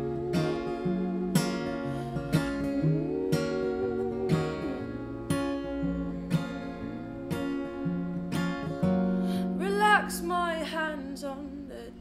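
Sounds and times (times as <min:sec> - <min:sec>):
acoustic guitar playing: 0:00.0 - 0:12.0.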